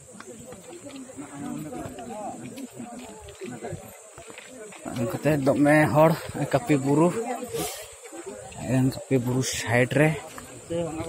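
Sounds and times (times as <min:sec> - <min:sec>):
man speaking: 0:04.8 - 0:07.3, 0:08.6 - 0:11.0.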